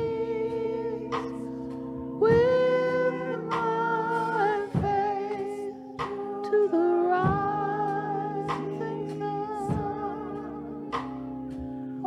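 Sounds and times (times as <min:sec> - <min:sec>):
church organ chords: 0:00.0 - 0:12.0
soft regular beat: 0:00.0 - 0:12.0.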